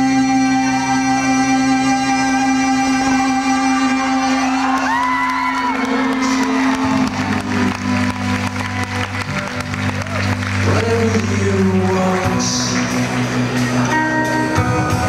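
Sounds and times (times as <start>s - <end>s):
rock band playing: 0.0s - 15.0s
crowd clapping and cheering: 2.8s - 15.0s
deep bass notes: 5.8s - 15.0s
sliding guitar tone: 5.9s - 15.0s.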